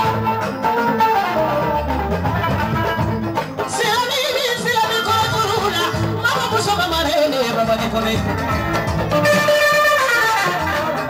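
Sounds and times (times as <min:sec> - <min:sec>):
instrumental accompaniment: 0:00.0 - 0:11.0
woman singing with vibrato: 0:03.7 - 0:07.1.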